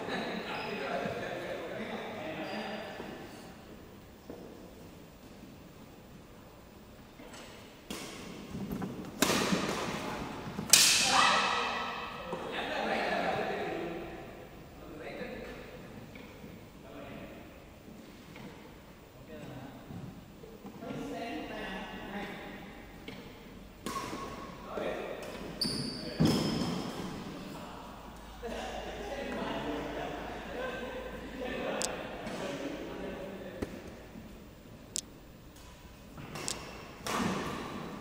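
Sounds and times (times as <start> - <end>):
shoe squeak: 0.4 - 1.0, 2.4 - 3.0, 25.5 - 26.8
racket hitting shuttlecock: 7.9 - 10.0, 10.6 - 12.2, 23.8 - 24.5, 36.2 - 37.9
racket smacking shuttlecock: 10.6 - 11.1, 36.2 - 37.8.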